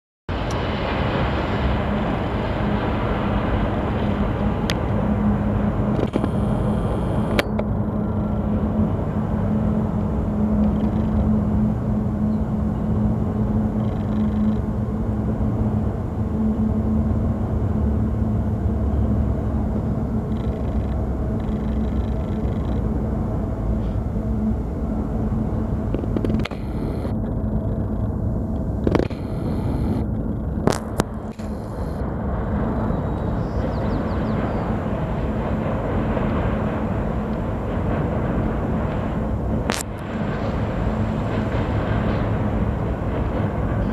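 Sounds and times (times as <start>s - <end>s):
freight train rumbling across bridge: 0.3s - 26.2s, 26.8s - 43.9s
steady hum: 0.3s - 43.9s
sharp clicks: 26.0s - 27.1s, 28.8s - 30.0s.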